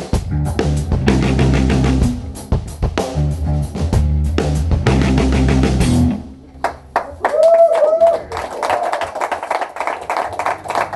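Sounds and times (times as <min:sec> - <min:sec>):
audience applauding: 0:06.6 - 0:10.9
whooping cheers: 0:07.0 - 0:09.6.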